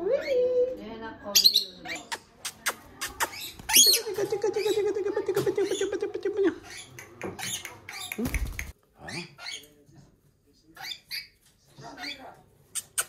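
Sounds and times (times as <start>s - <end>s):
parrot chattering and squeaking: 1.3s - 9.8s, 10.7s - 13.0s.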